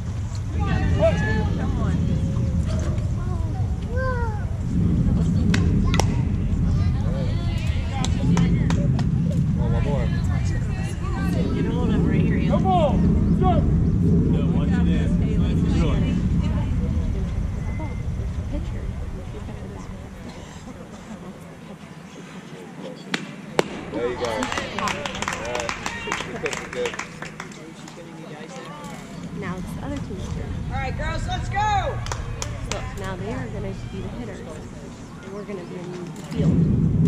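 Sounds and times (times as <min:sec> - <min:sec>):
bat cracking ball: 0:23.1 - 0:25.8.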